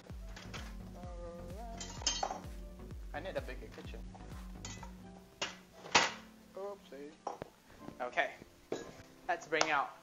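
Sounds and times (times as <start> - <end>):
kitchenware clattering: 1.8 - 2.5, 4.6 - 6.3, 8.7 - 9.0.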